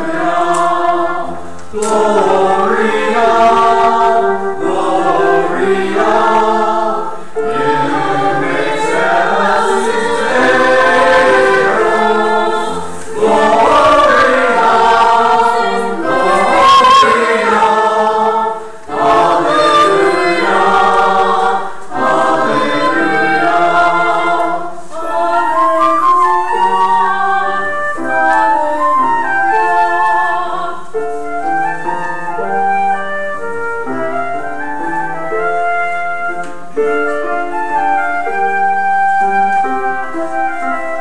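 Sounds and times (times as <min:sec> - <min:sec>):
church choir singing: 0:00.0 - 0:32.8.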